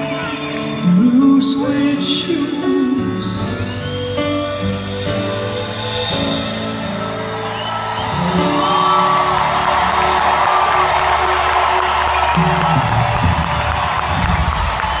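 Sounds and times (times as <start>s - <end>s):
crowd cheering and whooping: 0.0s - 1.2s, 5.6s - 15.0s
live pop band held notes: 0.0s - 15.0s.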